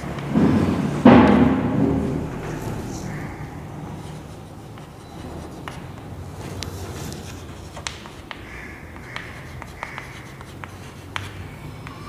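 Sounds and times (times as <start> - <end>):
chalk scratching on blackboard: 2.4 - 12.0
chalk squeak: 2.5 - 12.0
chalk tapping on board: 4.0 - 12.0.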